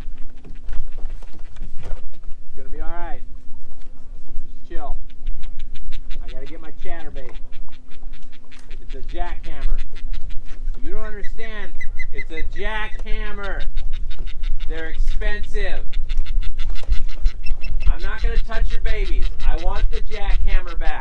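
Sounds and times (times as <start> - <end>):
loud bird calls: 0.0 - 21.0
steady low rumble: 0.0 - 21.0.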